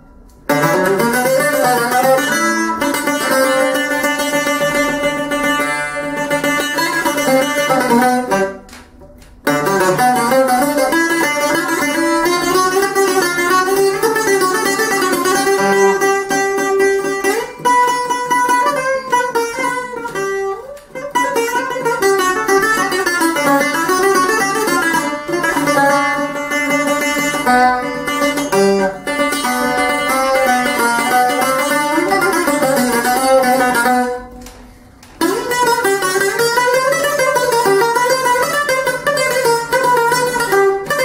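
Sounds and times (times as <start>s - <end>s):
bouzouki melody: 0.0s - 41.0s.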